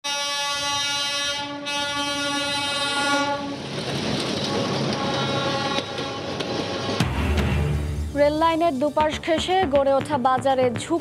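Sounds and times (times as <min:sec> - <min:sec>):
locomotive horn: 0:00.0 - 0:03.8, 0:04.4 - 0:07.6
train rumbling and clattering past: 0:01.6 - 0:11.0.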